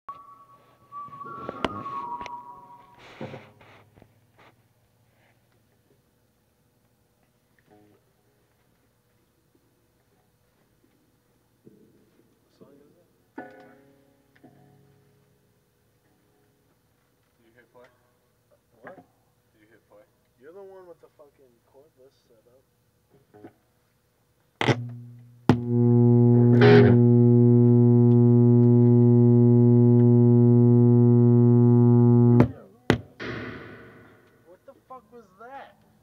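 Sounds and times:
electric guitar notes: 0:00.1 - 0:03.2, 0:24.6 - 0:32.6, 0:33.2 - 0:34.3
brief scratchy noise: 0:00.1 - 0:03.9.

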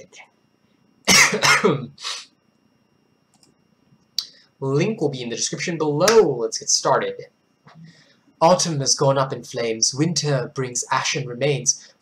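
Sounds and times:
man coughing: 0:01.1 - 0:02.0.

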